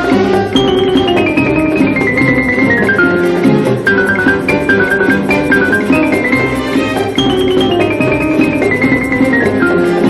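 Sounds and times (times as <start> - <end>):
light orchestra with piano: 0.0 - 10.0.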